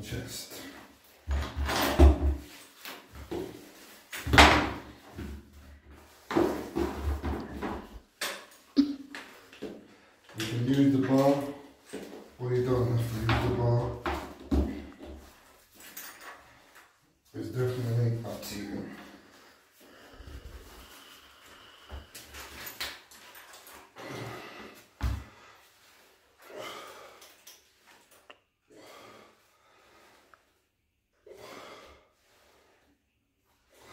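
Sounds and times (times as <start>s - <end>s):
man speaking: 0.0s - 0.8s, 10.4s - 11.7s, 12.4s - 14.1s, 17.3s - 19.1s
exercise bar and metal clips rattling: 15.7s - 16.8s, 22.3s - 24.0s.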